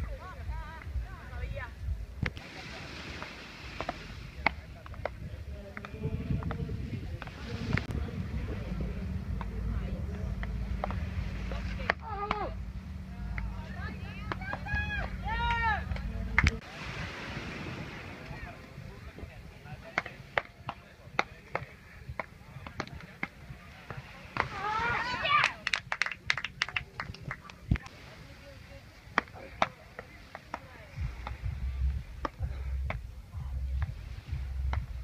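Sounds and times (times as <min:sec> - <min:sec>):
low rumble: 0:03.6 - 0:19.7, 0:30.9 - 0:35.0.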